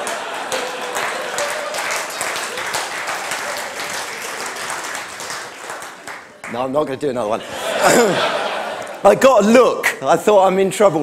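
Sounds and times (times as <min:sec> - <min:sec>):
audience applauding: 0:00.0 - 0:06.8.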